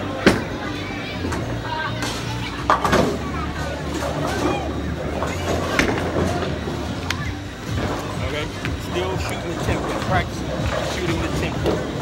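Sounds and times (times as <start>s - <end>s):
background chatter: 0.0s - 12.0s
bowling balls rolling: 0.0s - 12.0s.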